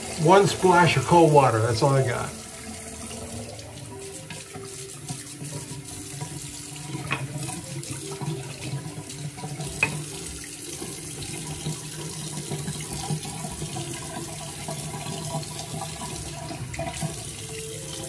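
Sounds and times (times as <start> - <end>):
tap running into a sink: 2.6 - 18.0.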